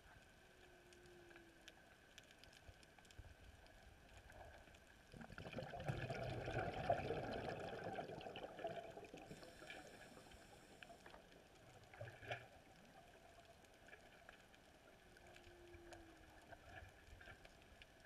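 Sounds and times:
underwater bubbles gurgling: 0.9s - 18.0s.

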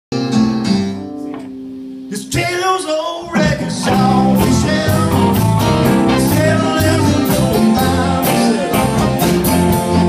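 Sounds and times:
electric guitars ringing chord: 3.4s - 10.0s.

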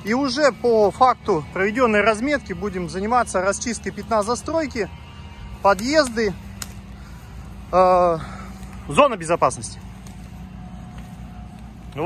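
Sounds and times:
engine running steadily: 0.0s - 12.0s.

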